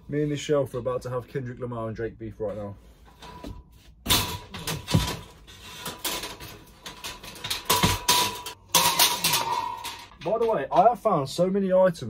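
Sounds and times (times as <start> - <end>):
metal shelving clanking and knocking: 3.1 - 11.2.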